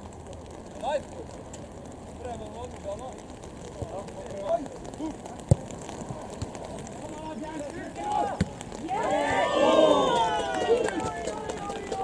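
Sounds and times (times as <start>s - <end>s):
people shouting: 7.6s - 12.0s.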